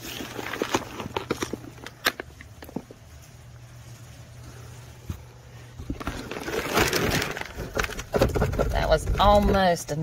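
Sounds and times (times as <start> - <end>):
worm castings scraping over plastic trays: 5.0 - 10.0.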